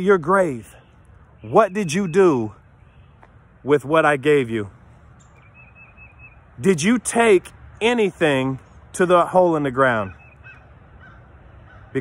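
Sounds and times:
faint short bird calls: 0:10.0 - 0:12.0.

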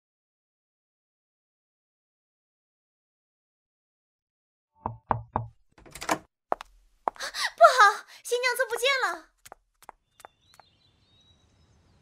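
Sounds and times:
knocks on a door: 0:04.9 - 0:05.6.

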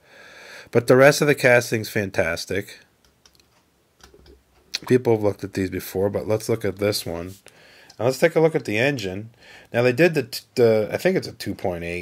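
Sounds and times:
person speaking: 0:04.0 - 0:12.0.

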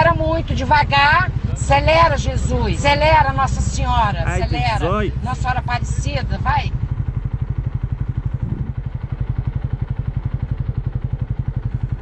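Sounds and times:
motorcycle engine at low revs: 0:00.0 - 0:12.0.

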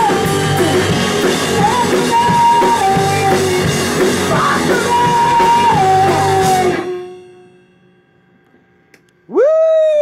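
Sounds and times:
electric bass: 0:00.0 - 0:07.2
drum kit: 0:00.0 - 0:07.4
punk rock band playing live: 0:00.0 - 0:07.6
electric guitar: 0:00.0 - 0:07.8.

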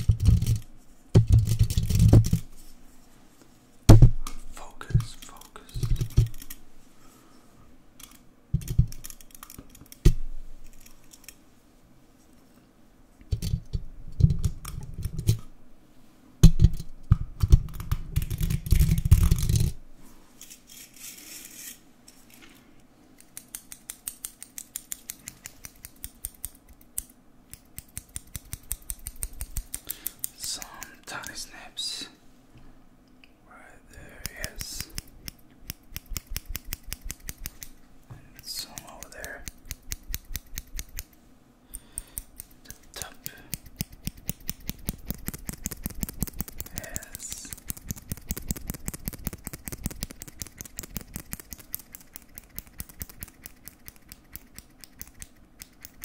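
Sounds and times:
scissors snipping: 0:34.2 - 0:37.7, 0:38.7 - 0:41.1, 0:41.7 - 0:56.0.

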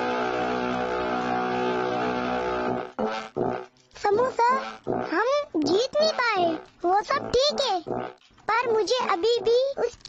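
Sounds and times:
cartoon character voices: 0:04.2 - 0:07.9.

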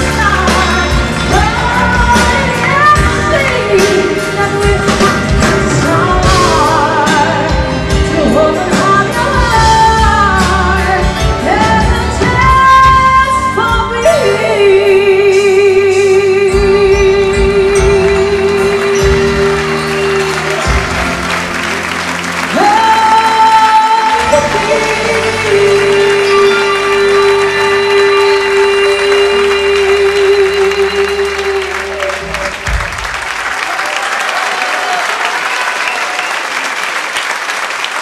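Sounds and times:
audience applause: 0:18.9 - 0:38.0.

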